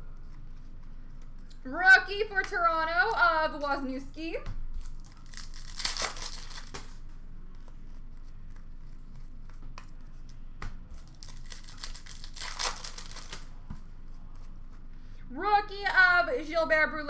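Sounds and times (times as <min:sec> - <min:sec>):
card wrappers tearing and crinkling: 0:04.7 - 0:07.0, 0:11.0 - 0:13.5
cards shuffled: 0:04.8 - 0:14.6.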